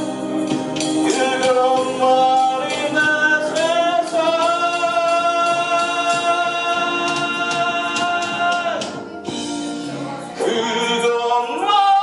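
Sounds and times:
electronic keyboard: 0:00.0 - 0:12.0
man singing into microphone: 0:01.0 - 0:09.1, 0:09.9 - 0:12.0.

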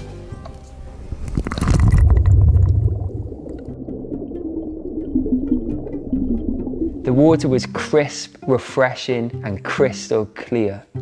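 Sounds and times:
background music: 0:00.0 - 0:11.0
low underwater bubbling: 0:01.1 - 0:07.8
plunge into water: 0:01.2 - 0:07.8.

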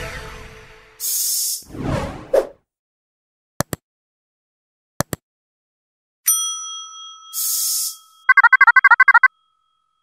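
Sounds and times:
electronic chirping trill: 0:08.3 - 0:09.3.

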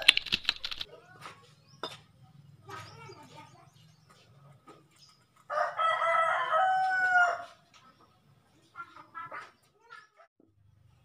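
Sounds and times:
rooster crowing: 0:05.5 - 0:07.6.

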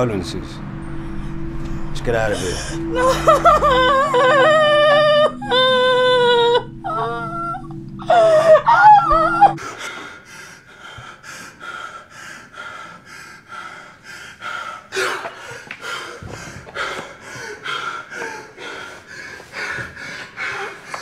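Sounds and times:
man breathing hard: 0:09.6 - 0:21.0.

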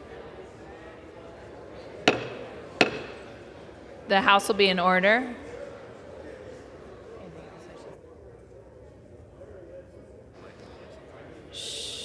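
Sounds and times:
gavel striking wooden block: 0:02.0 - 0:03.2.

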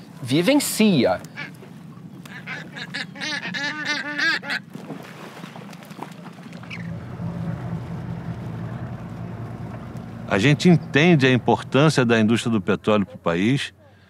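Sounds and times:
boat engine humming: 0:00.0 - 0:14.0
seabirds calling: 0:00.4 - 0:14.0.

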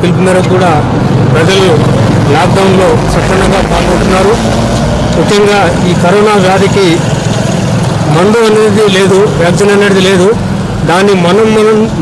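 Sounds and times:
man talking into a microphone: 0:00.0 - 0:04.5, 0:05.2 - 0:07.1, 0:08.0 - 0:12.0.

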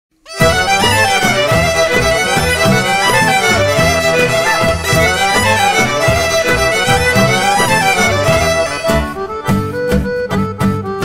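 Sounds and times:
fiddle playing fast melody: 0:00.3 - 0:11.0.

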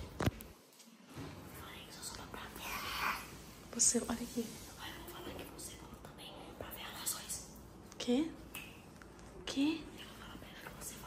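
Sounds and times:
person whispering: 0:01.6 - 0:08.4, 0:09.4 - 0:11.0.

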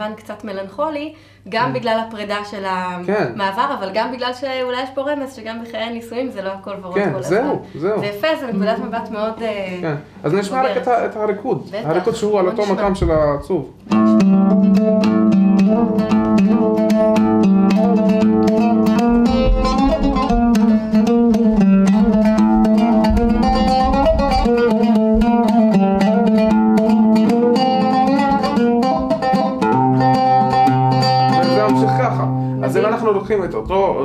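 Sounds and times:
oud plucked dance tune: 0:12.9 - 0:34.0.

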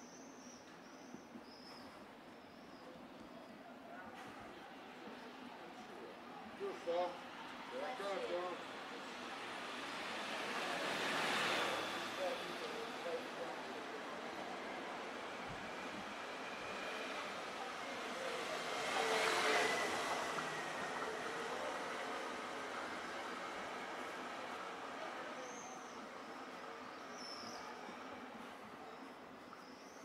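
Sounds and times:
city street ambience: 0:00.0 - 0:30.0.

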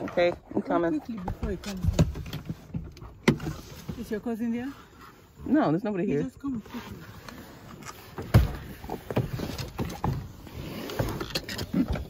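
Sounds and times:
person moving inside a car: 0:00.0 - 0:12.0.

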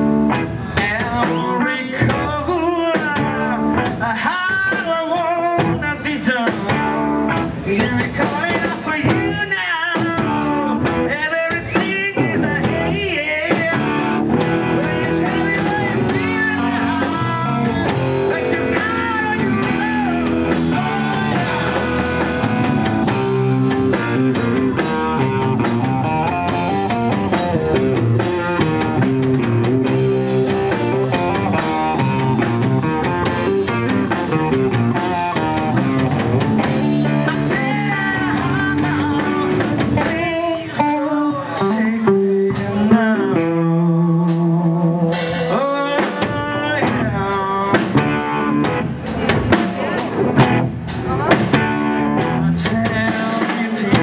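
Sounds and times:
live blues-rock band playing: 0:00.0 - 0:54.0.

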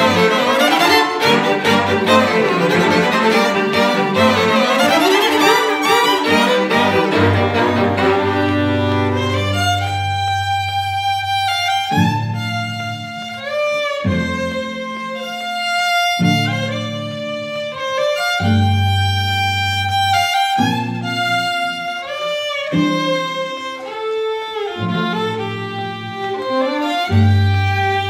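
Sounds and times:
cellos bowing low notes: 0:00.0 - 0:28.0
fiddles playing lively melody: 0:00.0 - 0:28.0.

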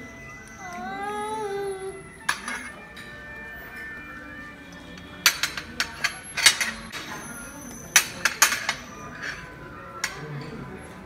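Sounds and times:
metal spoons clinking on crockery: 0:02.3 - 0:03.2, 0:05.0 - 0:10.6.

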